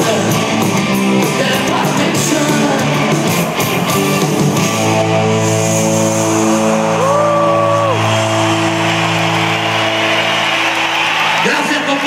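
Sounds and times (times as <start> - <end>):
crowd cheering and whooping: 5.9 - 12.0.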